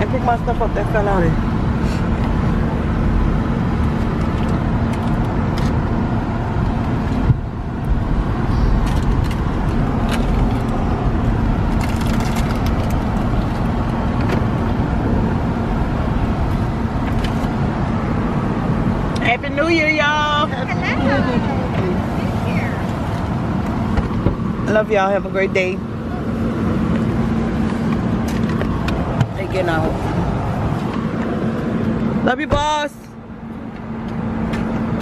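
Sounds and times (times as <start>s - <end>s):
car engine and road noise: 0.0s - 35.0s.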